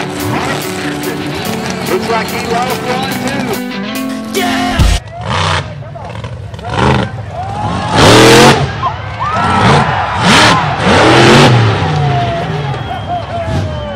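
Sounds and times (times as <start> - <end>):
truck engine revving hard: 0.0 - 2.9, 4.9 - 13.9
people shouting: 4.3 - 5.1.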